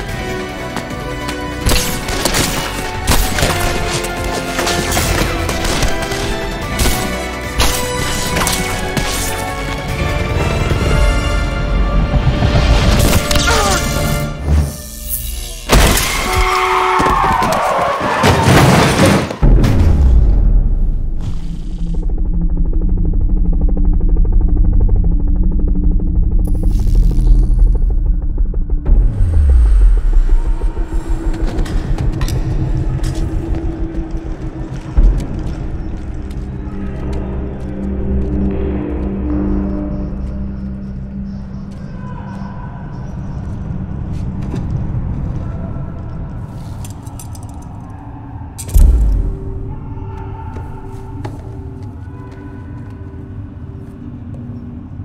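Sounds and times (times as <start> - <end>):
film score music: 0.0 - 55.0
low rumble: 19.9 - 40.9, 47.4 - 51.2
heavy hits: 48.6 - 51.2.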